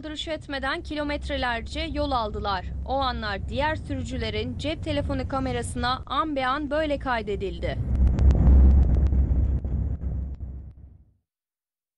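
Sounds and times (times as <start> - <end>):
road and engine rumble: 0.0 - 10.9.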